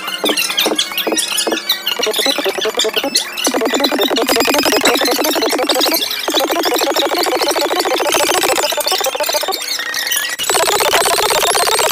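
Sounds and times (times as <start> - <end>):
sped-up squeaky woman's voice: 2.0 - 9.6.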